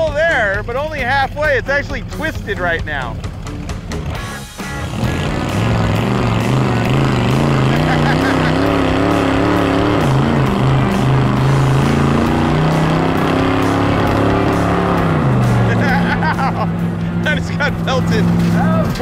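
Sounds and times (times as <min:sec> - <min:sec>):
car engine revving high: 0:03.0 - 0:19.0.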